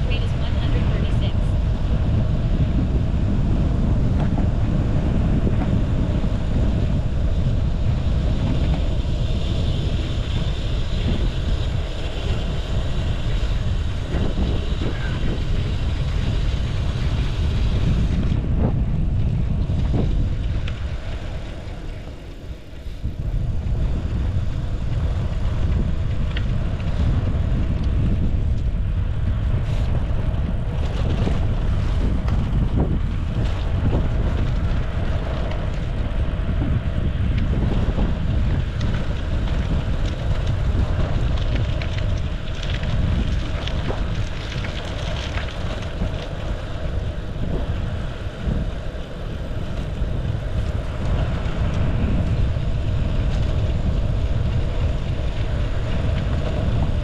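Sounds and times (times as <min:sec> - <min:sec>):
tyre noise on asphalt: 0:00.0 - 0:57.0
wind buffeting microphone: 0:00.0 - 0:57.0.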